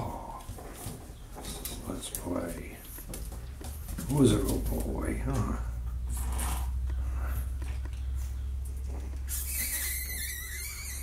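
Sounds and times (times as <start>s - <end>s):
steady low hum: 0.0s - 10.8s
puppies scuffling on carpet: 0.0s - 11.0s.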